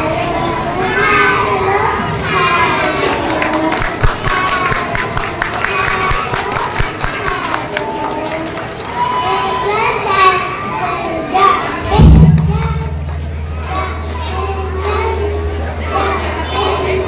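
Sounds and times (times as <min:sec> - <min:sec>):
audience chatter: 0:00.0 - 0:17.0
children's voices: 0:00.0 - 0:17.0
loud thump: 0:11.8 - 0:13.7
steady low hum: 0:11.8 - 0:15.7.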